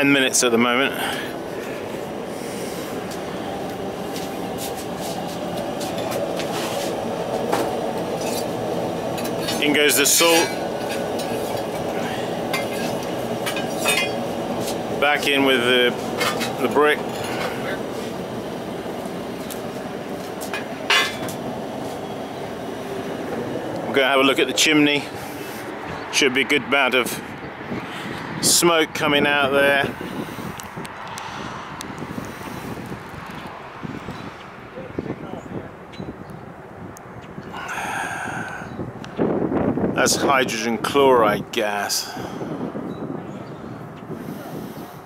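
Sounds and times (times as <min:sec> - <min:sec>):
gas burners rushing: 0:00.0 - 0:45.0
metal clink on kiln: 0:12.5 - 0:14.2.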